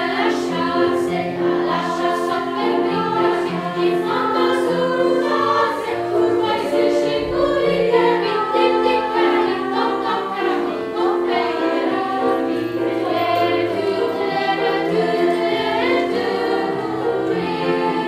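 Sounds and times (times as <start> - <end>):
children's choir singing: 0.0 - 18.0
piano accompaniment: 0.0 - 18.0.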